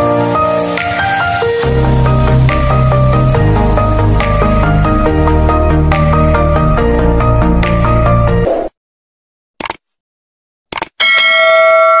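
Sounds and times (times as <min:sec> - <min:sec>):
bright bell chime: 0:11.0 - 0:12.0.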